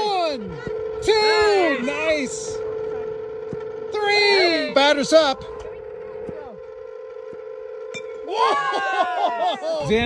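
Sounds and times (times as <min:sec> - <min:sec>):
electric motors whining: 0:00.0 - 0:10.0.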